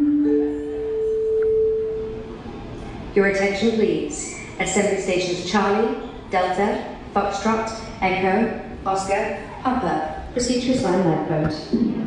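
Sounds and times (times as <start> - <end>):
public-address chime tone: 0.0 - 2.3.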